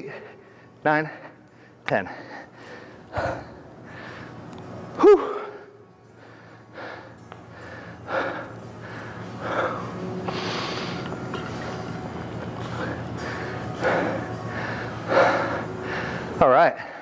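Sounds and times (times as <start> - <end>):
man breathing hard: 6.2 - 11.2, 12.7 - 17.0.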